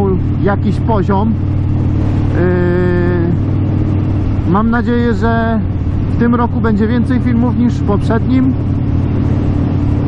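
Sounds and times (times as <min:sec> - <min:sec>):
motorcycle engine running: 0:00.0 - 0:10.0
wind rush: 0:01.4 - 0:10.0.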